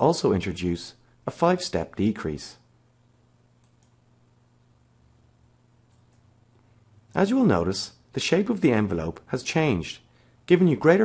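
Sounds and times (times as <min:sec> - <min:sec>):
faint low hum: 0:00.0 - 0:11.0
computer mouse clicks: 0:03.6 - 0:04.0, 0:05.9 - 0:06.3.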